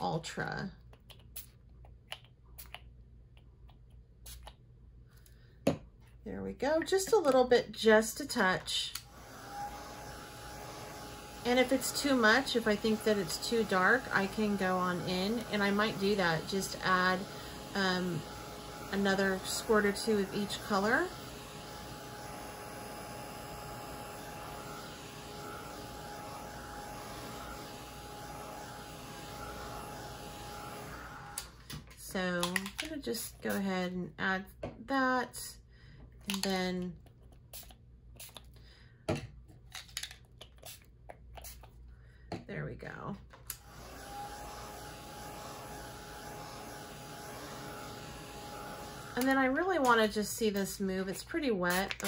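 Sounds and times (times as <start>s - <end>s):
handheld dryer blowing air: 6.6s - 33.9s, 43.5s - 52.0s.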